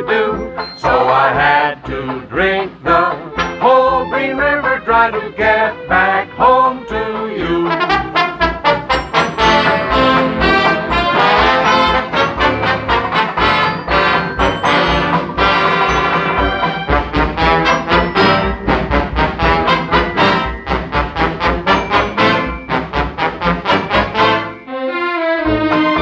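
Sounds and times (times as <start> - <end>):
dance orchestra with brass: 3.2 - 6.6, 7.4 - 26.0.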